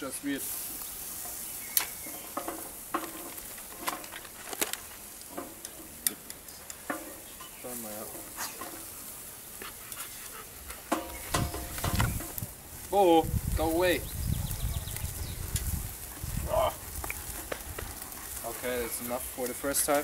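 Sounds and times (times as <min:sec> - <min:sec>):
meat sizzling on grill: 0:00.0 - 0:20.0.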